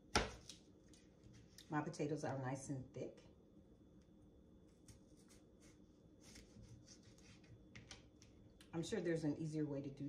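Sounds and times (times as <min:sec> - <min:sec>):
knife scraping through potato: 0:04.7 - 0:07.6.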